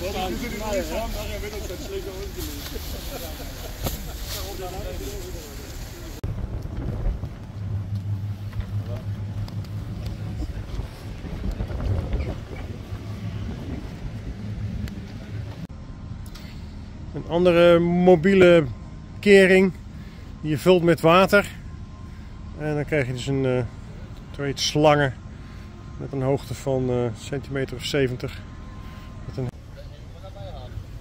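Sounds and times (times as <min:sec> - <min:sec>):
people talking: 0:00.0 - 0:06.2, 0:08.6 - 0:12.8, 0:17.2 - 0:19.8, 0:20.4 - 0:21.6, 0:22.6 - 0:25.2, 0:26.0 - 0:28.4, 0:29.3 - 0:31.0
engine rumbling: 0:00.0 - 0:31.0.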